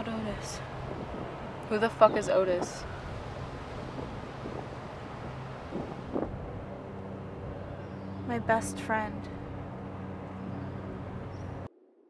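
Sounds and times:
wind on microphone: 0.0 - 8.6.

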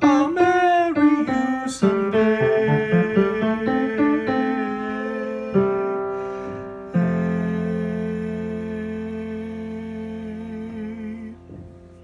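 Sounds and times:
sustained piano chord: 0.0 - 12.0.

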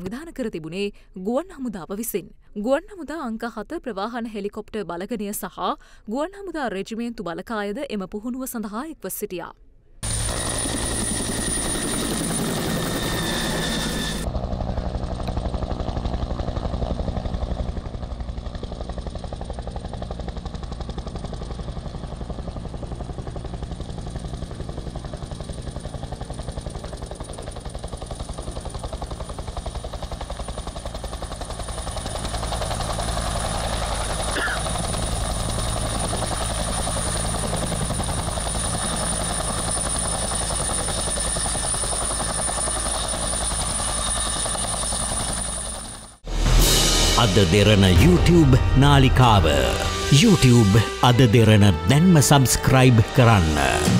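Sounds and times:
helicopter rotor and turbine: 10.0 - 53.9.

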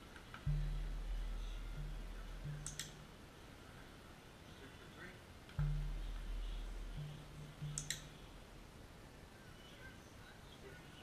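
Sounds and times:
low steady hum: 0.0 - 11.0
sharp double click: 2.5 - 3.0, 7.6 - 8.1.

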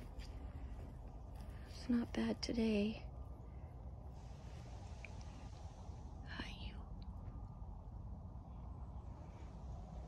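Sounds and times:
steady low rumble: 0.0 - 10.0
soft whisper-like voice: 4.2 - 7.4.

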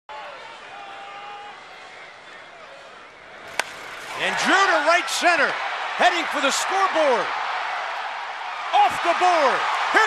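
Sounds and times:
ballpark crowd noise: 0.1 - 10.0
fans' voices: 0.1 - 10.0
baseball bat hitting ball: 3.5 - 4.2.

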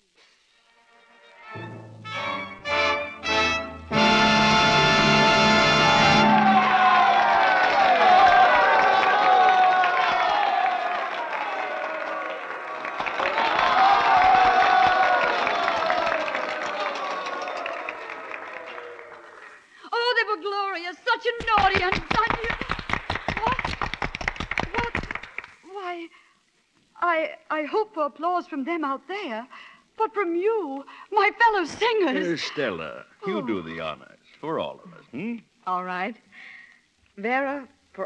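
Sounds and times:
orchestra playing: 0.6 - 7.1
audience applauding and cheering: 1.6 - 19.8, 21.4 - 25.7.

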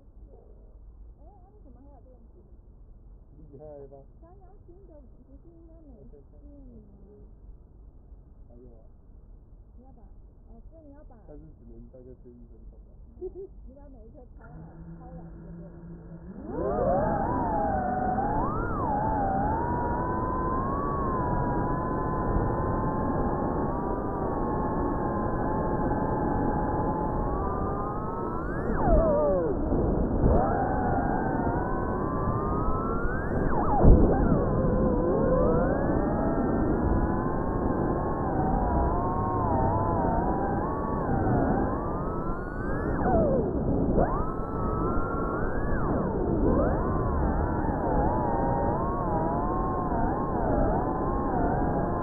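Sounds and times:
drone propellers whining: 14.4 - 52.0.

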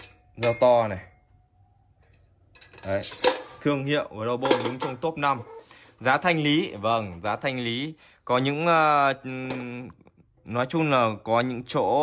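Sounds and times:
man speaking: 0.4 - 1.2, 2.8 - 12.0.

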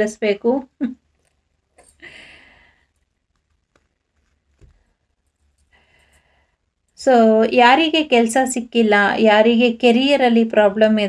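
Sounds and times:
breathy sigh: 2.0 - 2.9.

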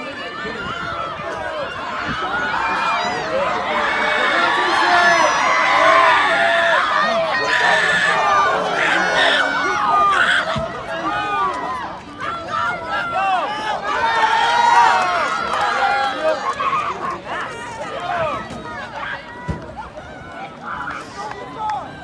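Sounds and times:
spectators shouting and cheering: 0.0 - 22.0.

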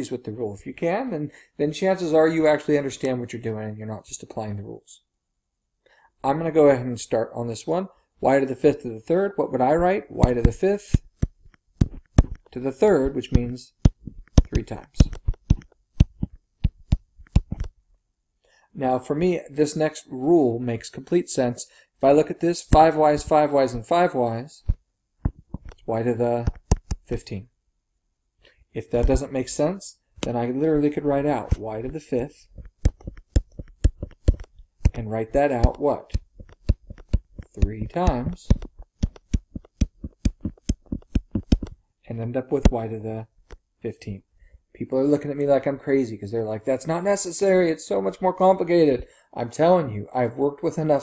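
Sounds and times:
stylus tapping on tablet screen: 10.2 - 17.8, 24.6 - 27.1, 29.0 - 29.2, 31.1 - 41.8.

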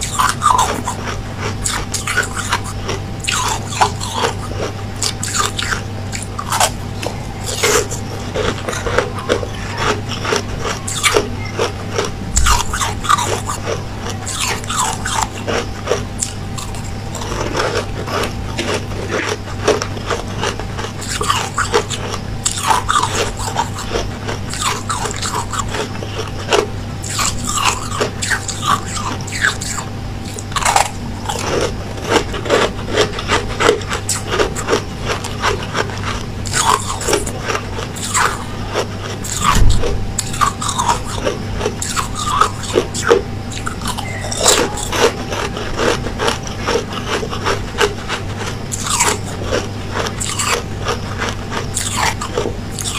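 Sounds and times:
person crunching ice: 0.0 - 52.9
steady low hum: 0.0 - 52.9.

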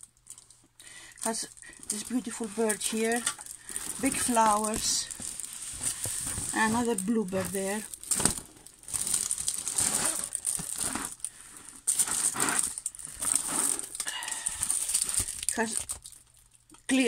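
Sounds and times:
plastic film crinkling: 0.0 - 17.0.

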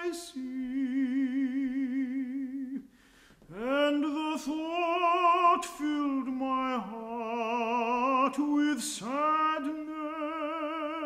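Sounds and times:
man singing a hymn: 0.0 - 11.0.

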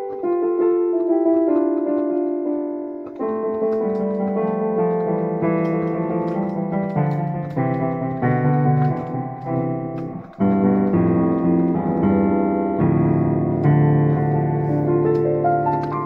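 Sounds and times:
solo piano improvisation: 0.0 - 16.0.

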